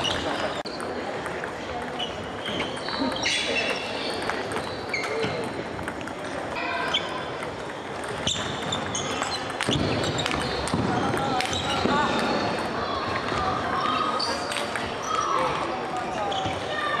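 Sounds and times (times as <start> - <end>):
background chatter of voices: 0.0 - 17.0.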